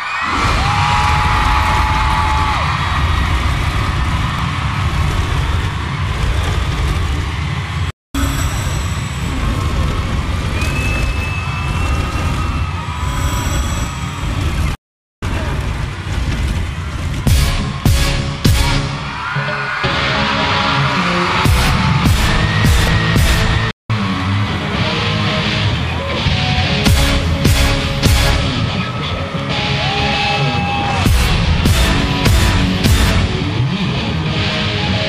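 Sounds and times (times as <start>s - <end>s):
crowd roar: 0.0s - 7.9s, 9.2s - 14.6s, 16.7s - 35.0s.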